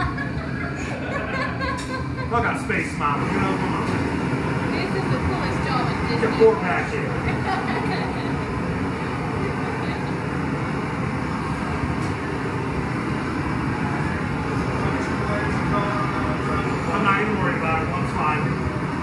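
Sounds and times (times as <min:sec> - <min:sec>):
faint voices: 0:00.3 - 0:19.0
gas torch flame rushing: 0:00.8 - 0:19.0.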